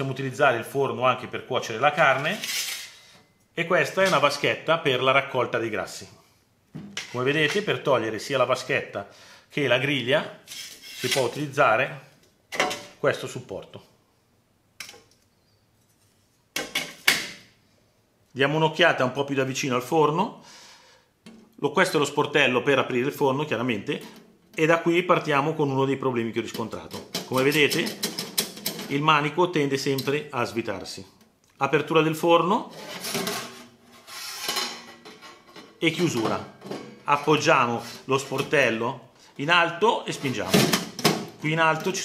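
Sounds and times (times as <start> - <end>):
metal grate clattering on tray: 27.0 - 28.9
metal oven door scraping clatters: 32.7 - 37.0.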